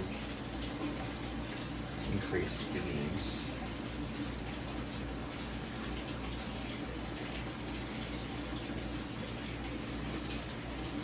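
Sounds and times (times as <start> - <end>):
low steady hum: 0.0 - 11.0
water bubbling and trickling: 0.0 - 11.0.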